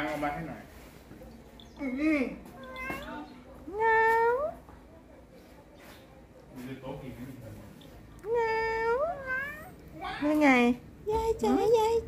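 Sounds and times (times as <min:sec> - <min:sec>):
cat meowing: 0:02.6 - 0:03.3, 0:08.4 - 0:09.8.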